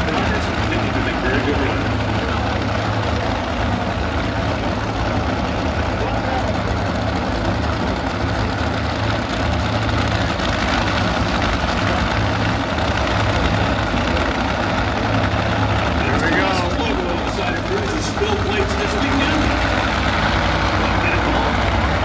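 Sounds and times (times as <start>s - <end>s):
loud engines idling: 0.0s - 22.0s.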